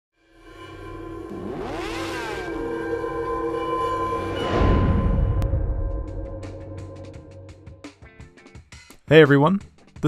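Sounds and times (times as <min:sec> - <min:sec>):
droning synth chord: 0:00.2 - 0:07.9
sweeping sound effect: 0:00.3 - 0:07.8.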